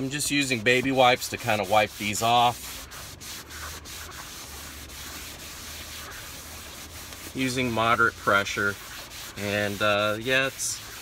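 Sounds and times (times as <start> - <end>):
wipe rubbing on leather seat: 0.1 - 11.0.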